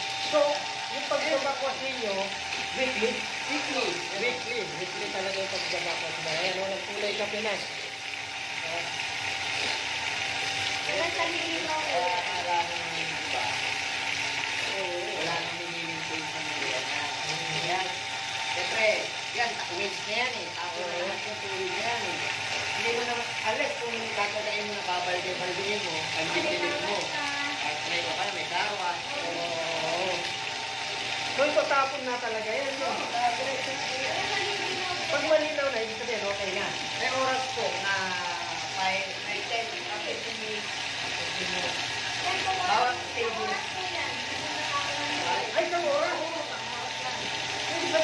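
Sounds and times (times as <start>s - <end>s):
water rushing into a tank: 0.0s - 48.0s
quiet conversational voices: 0.2s - 48.0s.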